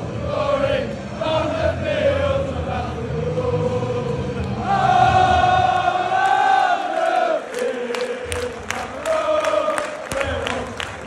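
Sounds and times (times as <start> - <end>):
football crowd chanting: 0.0 - 11.0.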